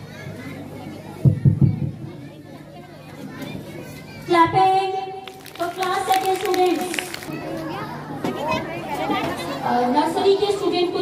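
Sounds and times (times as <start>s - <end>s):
children chattering and calling: 0.0s - 4.4s, 5.3s - 11.0s.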